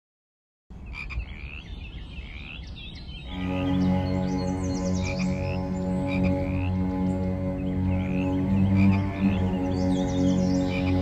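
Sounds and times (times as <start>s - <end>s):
frogs chirping: 0.9s - 11.0s.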